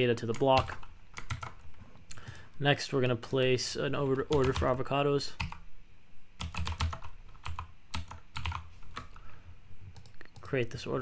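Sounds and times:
typing on computer keyboard: 0.3 - 1.6, 4.3 - 4.8, 5.4 - 5.6, 6.4 - 9.1.

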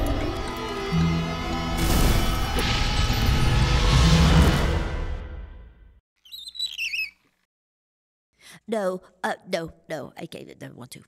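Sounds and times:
high warbling squeak: 6.2 - 7.2.

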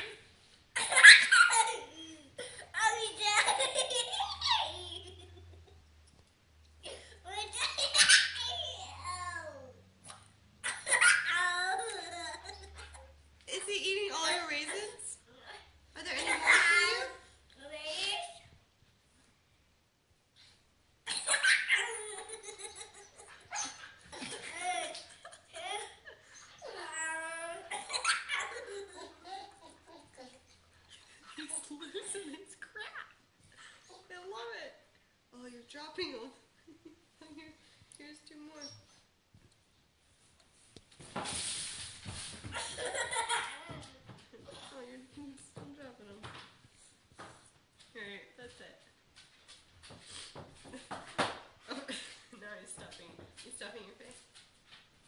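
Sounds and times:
child laughing: 0.8 - 5.8, 7.4 - 9.0, 10.6 - 13.1, 21.1 - 30.6, 42.5 - 44.0.

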